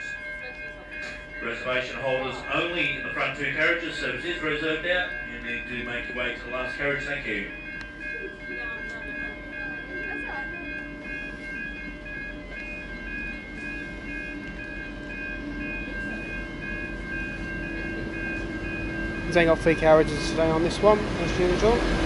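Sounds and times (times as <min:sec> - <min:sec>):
locomotive engine hum: 0:00.0 - 0:22.0
steady high electronic tone: 0:01.4 - 0:21.7.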